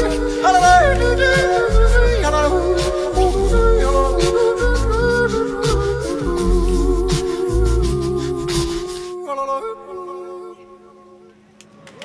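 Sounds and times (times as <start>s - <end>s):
a cappella humming chord: 0.0s - 11.6s.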